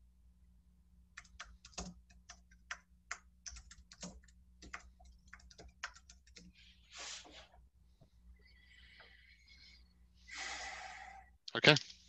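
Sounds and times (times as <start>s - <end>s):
typing on computer keyboard: 1.1s - 6.6s.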